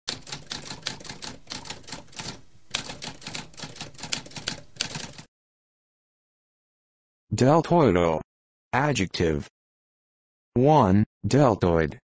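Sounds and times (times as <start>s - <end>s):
manual typewriter keys clacking: 0.1s - 5.3s.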